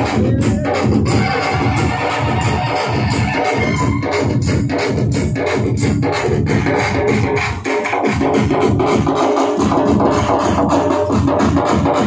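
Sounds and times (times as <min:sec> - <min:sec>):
electronic keyboard music: 0:00.0 - 0:12.0.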